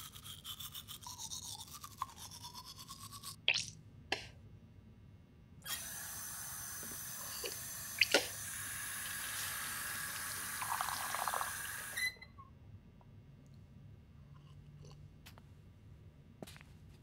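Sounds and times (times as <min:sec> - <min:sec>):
water running from a tap: 0:07.8 - 0:12.0
cup filling gurgle: 0:10.1 - 0:12.0.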